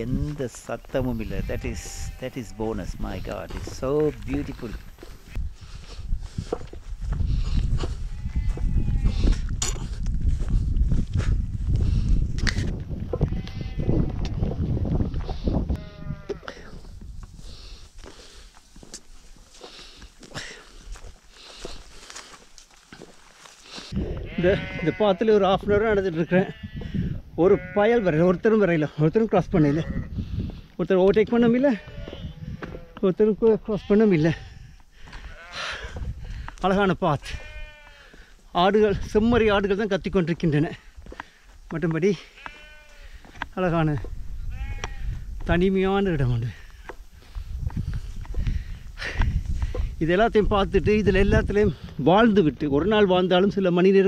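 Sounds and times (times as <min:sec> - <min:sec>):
man talking: 0:00.0 - 0:04.8, 0:38.5 - 0:40.8, 0:41.7 - 0:42.3, 0:45.5 - 0:46.6, 0:50.0 - 0:54.0
wind rumble on microphone: 0:00.0 - 0:18.1, 0:23.9 - 0:28.5, 0:29.1 - 0:38.0, 0:38.6 - 0:41.7, 0:42.4 - 0:53.6
footsteps on dirt path: 0:00.0 - 0:53.6
sheep bleating: 0:01.1 - 0:04.8, 0:07.8 - 0:09.4, 0:13.2 - 0:14.2, 0:15.7 - 0:16.7, 0:23.8 - 0:30.2, 0:31.3 - 0:35.9, 0:37.1 - 0:38.3, 0:42.1 - 0:43.2, 0:44.4 - 0:45.2.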